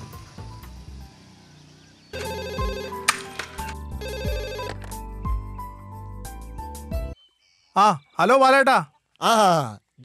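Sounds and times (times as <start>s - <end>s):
mobile phone ringtone: 2.2s - 4.9s
background music: 2.2s - 7.2s.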